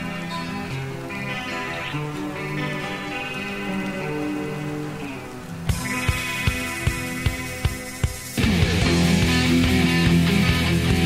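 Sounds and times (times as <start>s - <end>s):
distorted guitars: 0.0s - 11.0s
drums: 0.0s - 11.0s
slow melodic metal passage: 0.0s - 11.0s.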